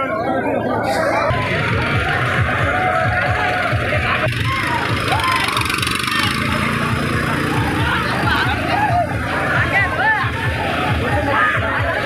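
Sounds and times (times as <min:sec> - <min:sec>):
crowd voices and shouts: 0:00.0 - 0:12.0
tractor diesel engine running: 0:01.2 - 0:11.1.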